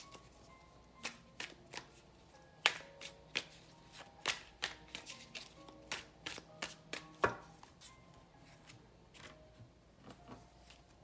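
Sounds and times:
faint background music: 0:00.0 - 0:11.0
cardboard box and cards tapping: 0:02.6 - 0:07.5.

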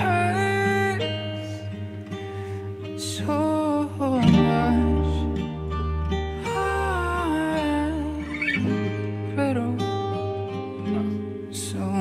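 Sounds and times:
man singing: 0:00.0 - 0:01.2, 0:03.0 - 0:05.8, 0:06.4 - 0:10.0, 0:10.8 - 0:12.0
guitar: 0:00.0 - 0:12.0.

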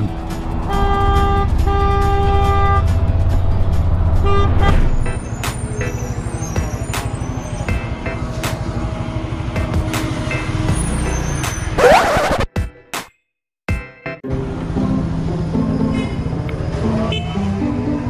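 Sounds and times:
bus engine: 0:00.0 - 0:12.5, 0:14.3 - 0:18.0
city traffic noise: 0:00.0 - 0:12.5, 0:14.3 - 0:18.0
road noise: 0:00.0 - 0:12.5, 0:14.3 - 0:18.0
vehicle horn honking: 0:00.7 - 0:02.9.

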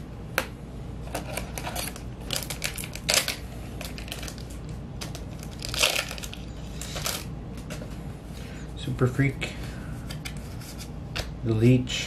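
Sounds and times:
wrapper crinkling and tearing: 0:02.3 - 0:07.3.

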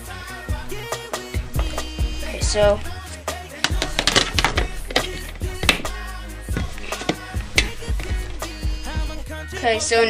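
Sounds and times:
background music with bass: 0:00.0 - 0:10.0
plastic tub and lid clicking: 0:03.6 - 0:06.0.

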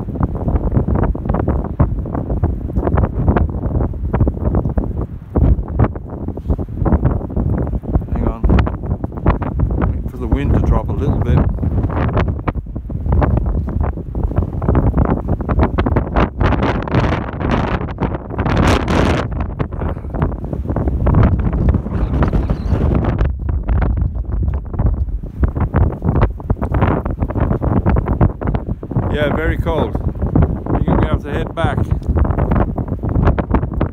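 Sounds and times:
wind buffeting microphone: 0:00.0 - 0:33.9.

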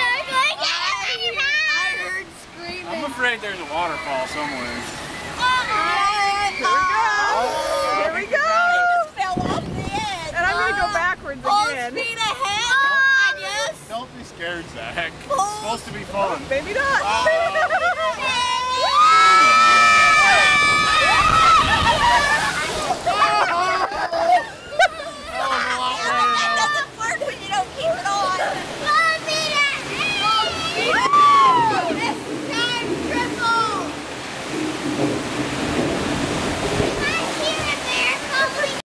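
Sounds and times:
children screaming: 0:00.0 - 0:02.2, 0:03.0 - 0:09.2, 0:17.0 - 0:34.2, 0:36.3 - 0:38.8
water rushing and splashing: 0:00.0 - 0:38.8.

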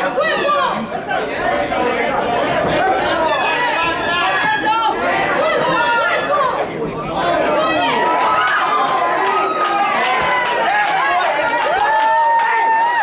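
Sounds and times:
crowd chatter in large hall: 0:00.0 - 0:13.0.

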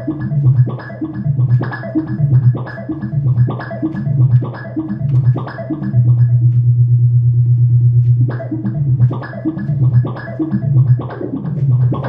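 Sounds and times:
pulsing synth bass note: 0:05.0 - 0:10.9.

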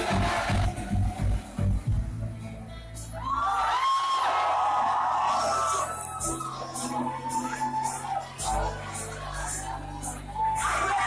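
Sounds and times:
crowd shouting and whooping: 0:00.0 - 0:01.8, 0:03.1 - 0:11.0
electronic dance music: 0:00.0 - 0:03.1, 0:04.8 - 0:11.0.

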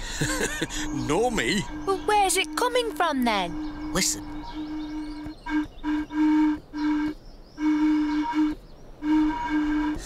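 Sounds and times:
low wind hooting: 0:00.0 - 0:10.0.

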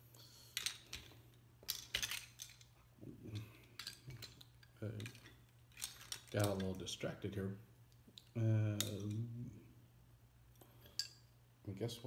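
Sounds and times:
plastic parts clicking and clattering: 0:00.5 - 0:06.8.

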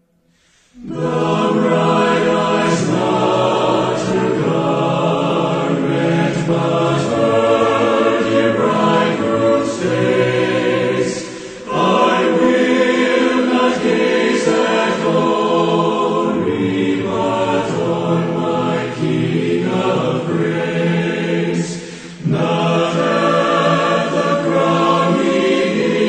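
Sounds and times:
choir singing a slow hymn: 0:00.4 - 0:26.0.

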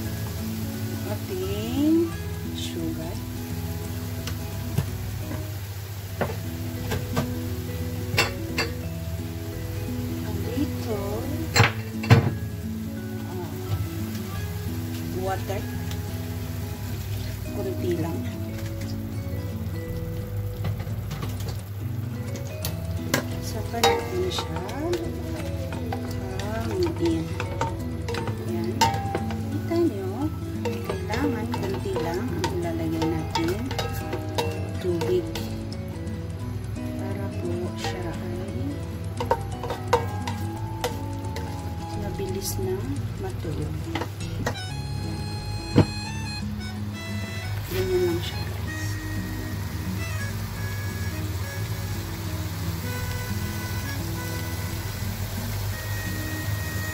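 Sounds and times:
food sizzling in a wok: 0:00.0 - 0:56.9
spatula clacking against pan: 0:22.3 - 0:29.9, 0:30.5 - 0:44.7.

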